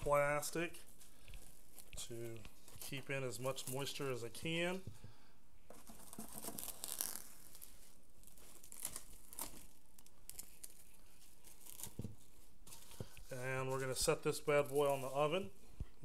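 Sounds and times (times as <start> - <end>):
plastic cling wrap crinkling: 5.7 - 15.5.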